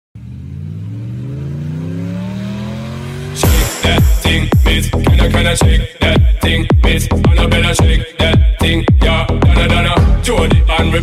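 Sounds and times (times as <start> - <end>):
car engine revving up: 0.2 - 5.6
music with heavy bass beat: 3.4 - 11.0.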